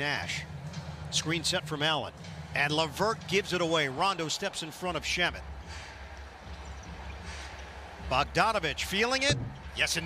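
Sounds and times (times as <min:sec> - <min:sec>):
low arena hum: 0:00.0 - 0:10.0.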